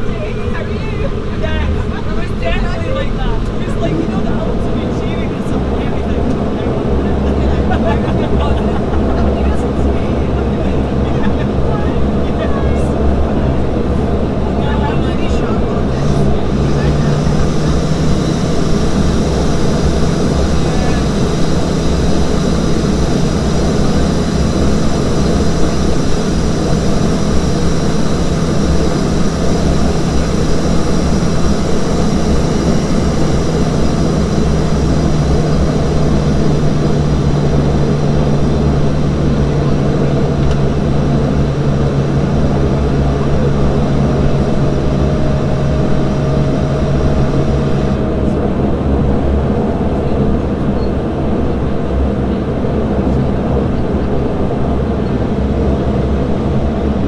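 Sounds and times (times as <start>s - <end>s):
propeller drone: 0.0s - 57.0s
turbine whine: 0.0s - 57.0s.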